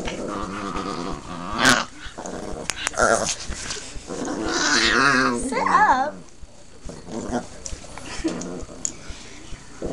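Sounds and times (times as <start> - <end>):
dog growling: 0.0 - 9.2.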